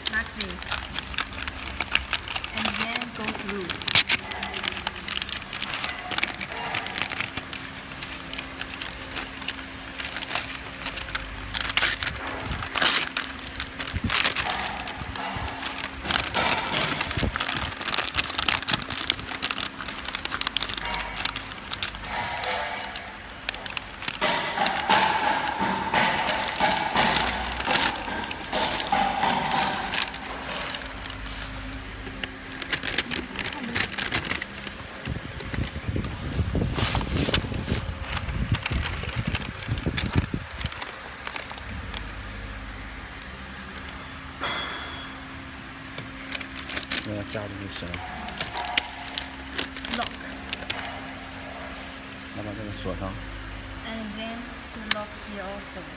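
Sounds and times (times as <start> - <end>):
paper crinkling and crackling: 0.0 - 44.8, 45.8 - 53.2.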